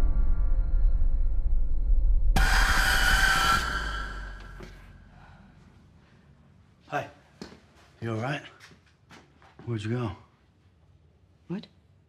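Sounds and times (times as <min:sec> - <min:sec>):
low rumble: 0:00.0 - 0:05.3
bright ringing music hit: 0:02.4 - 0:04.7.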